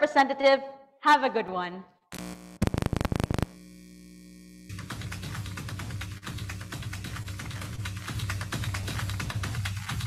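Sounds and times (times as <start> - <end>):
electrical mains hum: 2.1 - 10.0
rapid loud clicks: 4.7 - 10.0
music: 4.8 - 10.0.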